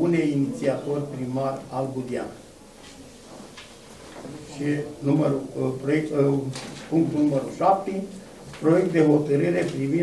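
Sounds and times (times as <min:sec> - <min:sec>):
man reading aloud: 0:00.0 - 0:02.5, 0:04.3 - 0:10.0.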